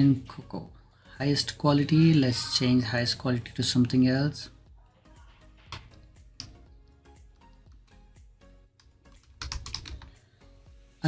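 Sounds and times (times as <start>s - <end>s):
computer keyboard typing: 5.7s - 6.7s, 8.8s - 10.2s.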